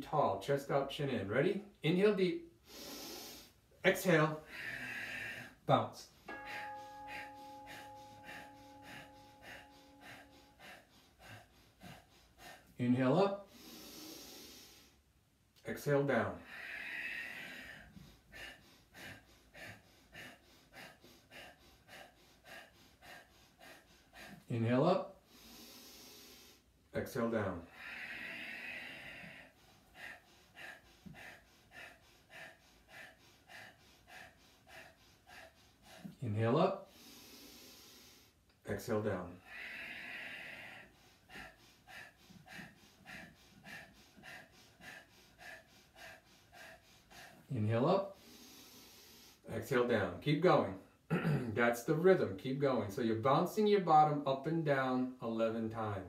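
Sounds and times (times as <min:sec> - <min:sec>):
long breath out through nose: 0:02.6 - 0:03.6, 0:06.3 - 0:12.7, 0:13.5 - 0:15.0, 0:27.7 - 0:36.1, 0:36.9 - 0:38.4, 0:39.5 - 0:47.4
sharp exhalations through nose: 0:02.6 - 0:03.6, 0:13.4 - 0:15.0
short nasal sniffs: 0:02.6 - 0:03.6, 0:13.5 - 0:15.0, 0:25.3 - 0:26.6
steady held tone: 0:06.0 - 0:11.3.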